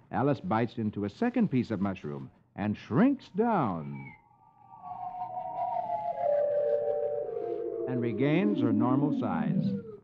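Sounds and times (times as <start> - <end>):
gliding tone falling in pitch: 4.7 - 10.0.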